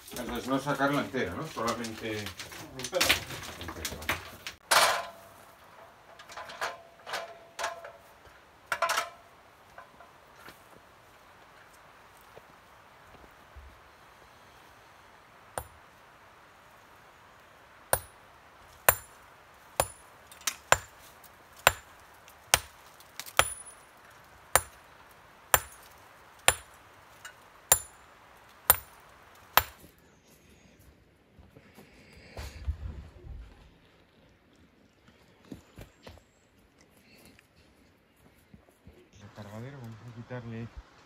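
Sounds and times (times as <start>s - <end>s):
hammer striking stone: 15.6s - 15.8s, 17.9s - 18.2s, 18.9s - 19.2s, 19.8s - 21.0s, 21.6s - 21.9s, 22.5s - 23.8s, 24.5s - 24.8s, 25.5s - 25.9s, 26.5s - 26.8s, 27.7s - 28.0s, 28.7s - 29.8s.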